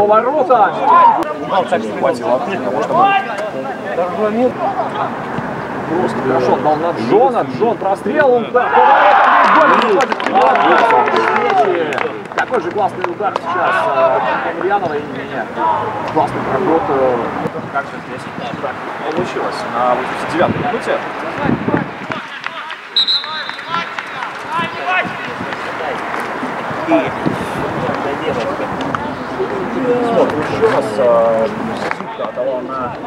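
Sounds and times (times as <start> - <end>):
people calling and shouting: 0.0 - 33.0
short high-pitched whistle: 23.0 - 23.9.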